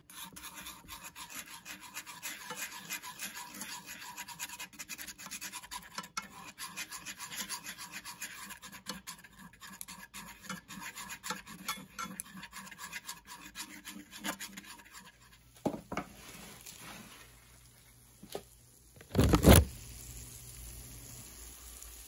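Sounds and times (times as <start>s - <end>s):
chopsticks scraping a pan: 0.0s - 17.4s
butter sizzling in a skillet: 14.0s - 22.0s.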